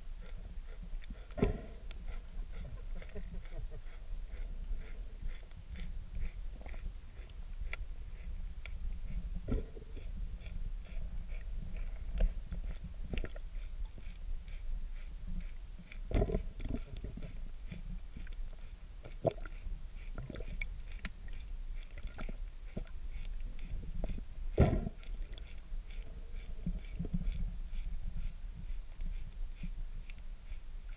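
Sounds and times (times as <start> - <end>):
low underwater rumble: 0.0 - 18.6, 19.2 - 29.6
underwater clicks and knocks: 16.1 - 17.2, 24.1 - 25.0.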